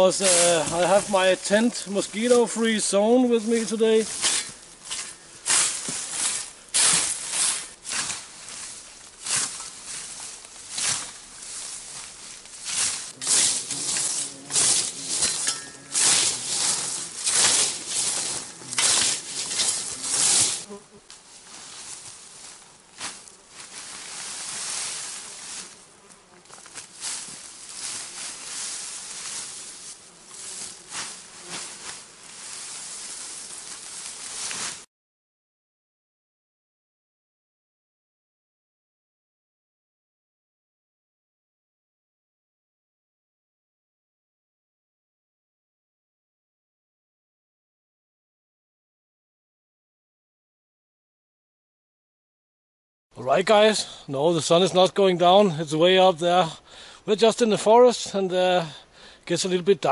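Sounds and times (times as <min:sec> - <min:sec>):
grass rustling: 0:00.0 - 0:34.9
scythe swishing through grass: 0:00.2 - 0:01.3, 0:03.4 - 0:34.9.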